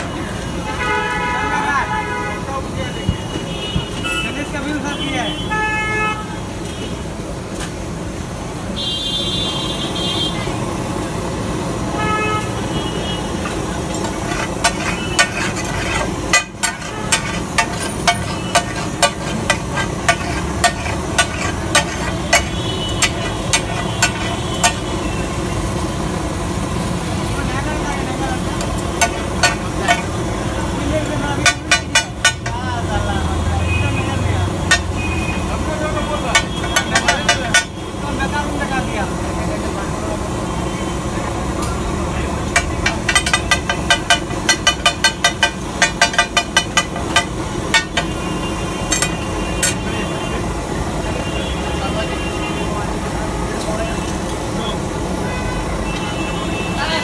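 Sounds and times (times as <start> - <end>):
street noise: 0.0 - 57.0
car horn toots: 12.0 - 13.6, 21.2 - 25.3, 33.6 - 37.8
voices: 12.0 - 25.7, 27.2 - 57.0
spatula clacking on iron griddle: 13.4 - 25.0, 28.6 - 30.2, 31.3 - 32.7, 34.6 - 35.0, 36.2 - 37.8, 42.5 - 48.2, 48.9 - 49.8.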